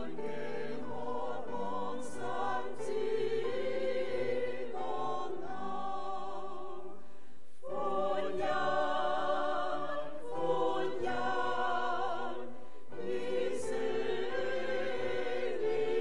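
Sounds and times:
church choir singing a carol: 0.0 - 16.0.

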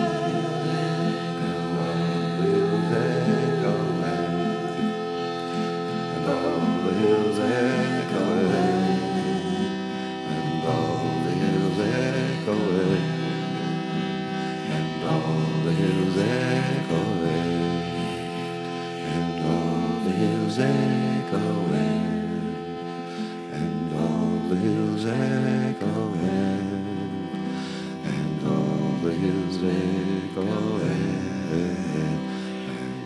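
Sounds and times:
harmonium droning chord: 0.0 - 33.0
voices singing together: 0.0 - 33.0.

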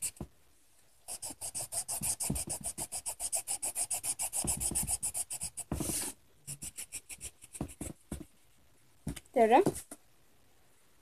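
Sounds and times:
marker scribbling on paper: 1.1 - 8.2.

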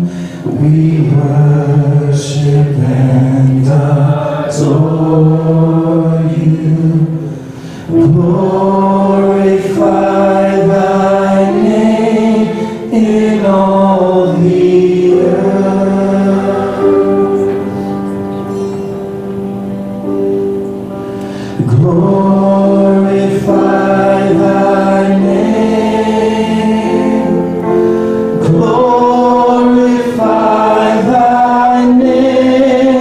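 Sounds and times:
person singing long notes: 0.0 - 33.0
worship band playing slow song: 0.0 - 33.0.

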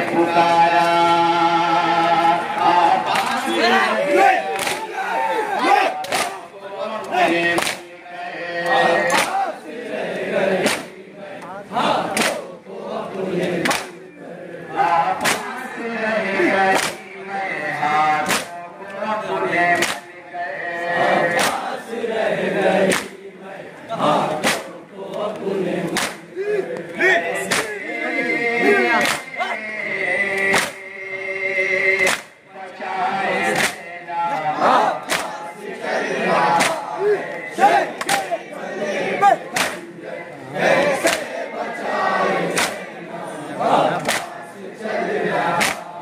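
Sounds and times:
mourners chanting together: 0.0 - 46.0
hands slapping chests: 3.1 - 3.4, 4.4 - 4.9, 5.8 - 6.4, 7.0 - 7.9, 8.6 - 9.5, 10.6 - 11.0, 12.1 - 12.5, 13.5 - 14.0, 14.9 - 15.6, 16.6 - 17.1, 18.2 - 18.6, 19.7 - 20.1, 21.3 - 21.7, 22.8 - 23.2, 24.3 - 27.7, 29.0 - 29.4, 30.3 - 30.9, 32.0 - 32.4, 33.5 - 33.9, 35.0 - 35.5, 36.5 - 36.9, 37.9 - 38.4, 39.5 - 39.9, 41.0 - 41.4, 42.5 - 42.9, 44.0 - 44.4, 45.5 - 46.0.

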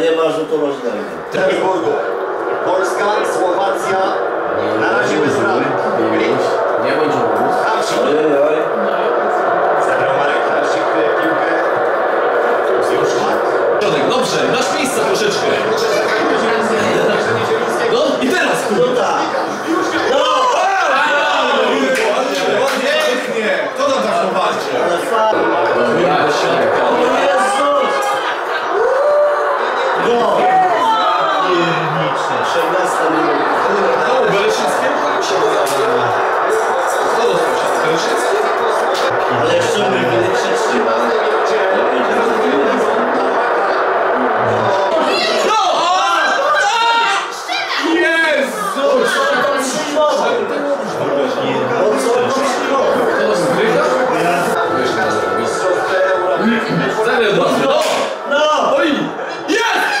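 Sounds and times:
excited voices talking: 0.0 - 60.0
stadium crowd noise: 0.0 - 60.0.

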